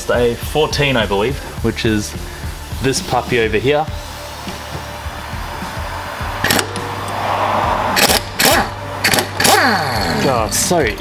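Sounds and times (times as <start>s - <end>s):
background music: 0.0s - 11.0s
air impact wrench bursts: 6.4s - 10.4s.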